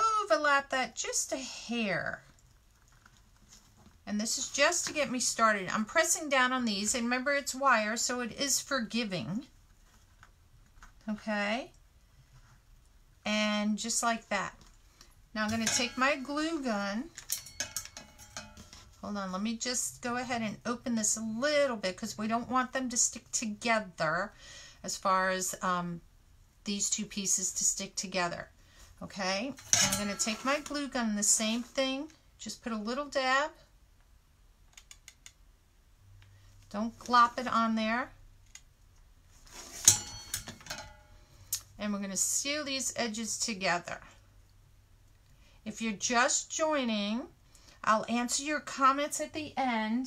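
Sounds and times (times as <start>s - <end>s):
brief metallic ring: 39.8s - 41.2s.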